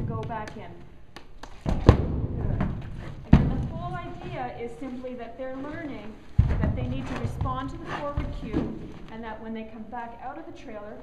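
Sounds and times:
hooves thudding on trailer floor: 0.0s - 0.8s, 1.4s - 9.4s.

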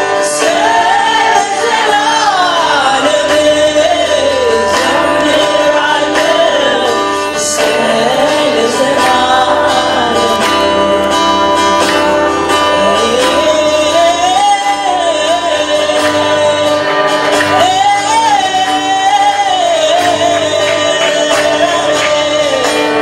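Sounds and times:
woman singing: 0.0s - 11.4s, 12.6s - 23.0s
acoustic guitar: 0.0s - 23.0s.

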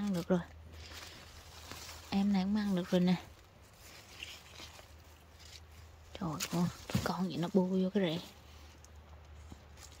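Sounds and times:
low steady hum: 0.0s - 10.0s
rustling of leaves and soil: 0.0s - 10.0s.

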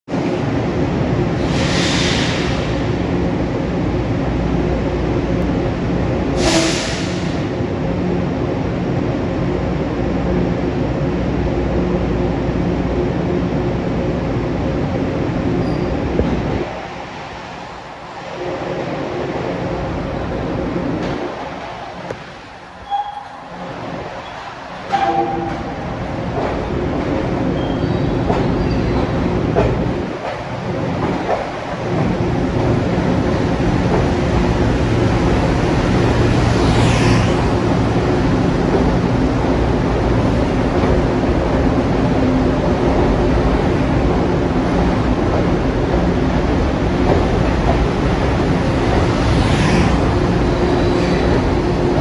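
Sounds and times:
train rumble and motor hum: 0.0s - 52.0s
air hiss bursts: 1.4s - 2.8s, 6.4s - 7.4s.

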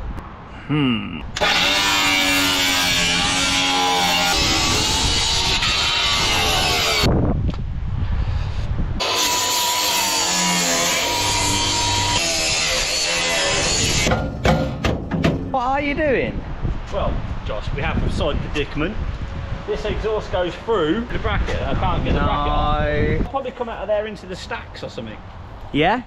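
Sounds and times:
reciprocating saw cutting metal: 1.4s - 7.1s, 9.0s - 14.9s.

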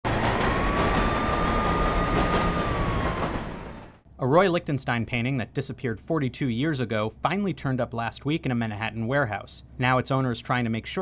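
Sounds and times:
siren rising and falling: 0.0s - 4.0s
street traffic: 0.1s - 4.0s.

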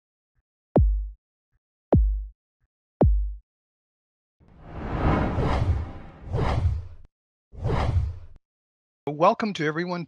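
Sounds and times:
low rumble: 4.6s - 6.3s
rushing whooshes: 4.6s - 6.8s.

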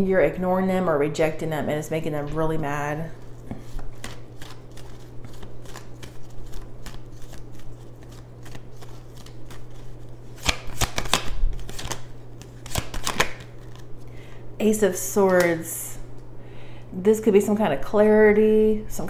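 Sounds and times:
cards being shuffled: 3.2s - 14.1s.

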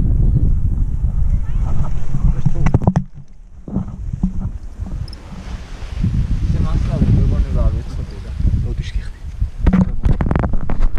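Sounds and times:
wind rushing over microphone: 0.0s - 10.9s.

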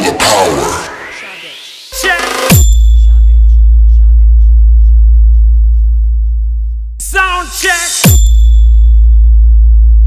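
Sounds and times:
deep sub-bass tone: 2.0s - 10.0s.

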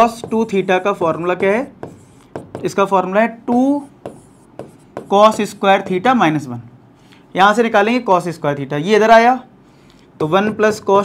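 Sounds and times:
chalk scratching on blackboard: 0.0s - 2.7s, 3.5s - 6.0s
man speaking: 5.0s - 6.7s.

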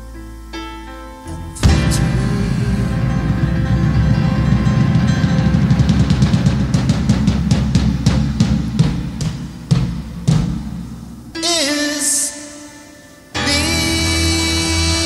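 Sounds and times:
heavy drum hits: 1.6s - 11.4s
rock band held chord: 1.6s - 11.4s
drum roll: 1.6s - 11.9s.

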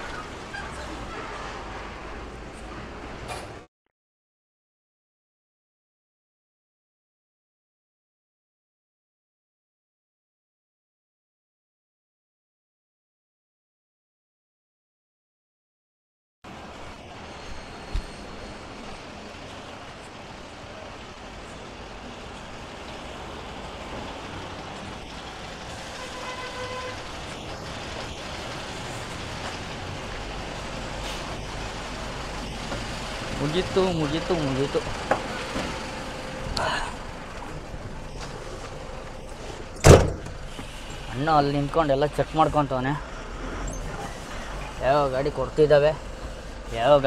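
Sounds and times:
diesel trucks rumbling past: 0.0s - 3.7s, 16.5s - 47.0s
sharp low thump: 39.8s - 40.4s.

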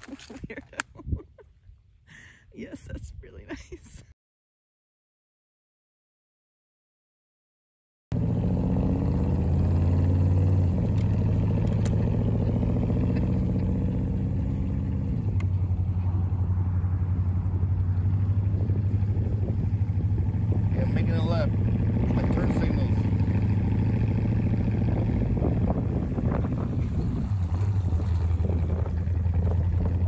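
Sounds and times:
road and wind noise: 0.0s - 4.1s, 8.1s - 30.0s
vehicle engine running: 8.1s - 30.0s.

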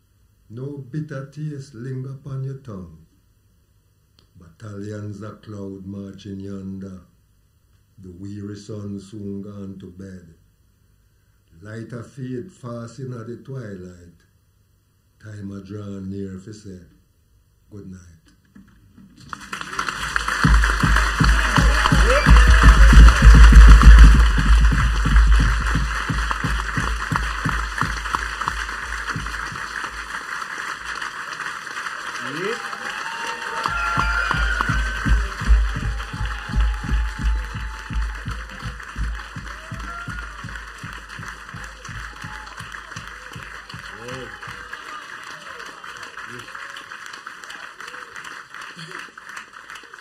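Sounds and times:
audience applause and cheering: 19.2s - 50.0s
deep pulsing bass: 20.1s - 30.1s, 33.8s - 44.0s.

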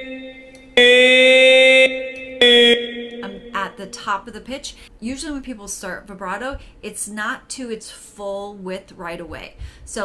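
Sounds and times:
buzzy held vocal tone: 0.0s - 4.0s.

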